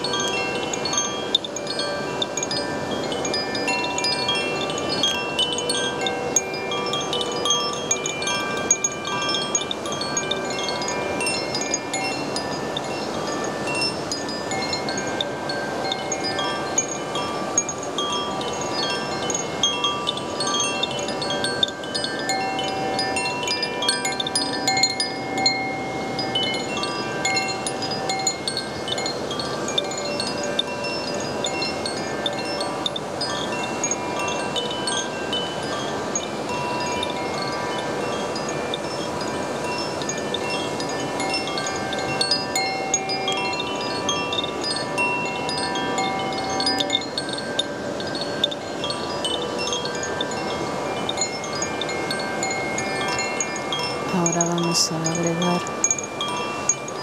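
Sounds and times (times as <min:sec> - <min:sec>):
wind chime ringing: 0:00.0 - 0:57.0.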